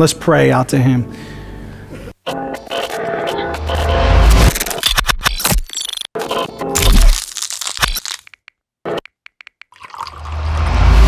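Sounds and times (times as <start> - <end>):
clipped audio snippets: 2.2 - 9.6.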